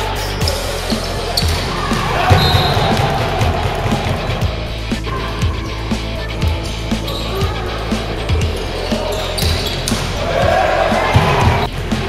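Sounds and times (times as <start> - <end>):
music: 0.0 - 12.0
voices: 0.0 - 12.0
volleyball being hit: 1.4 - 4.0.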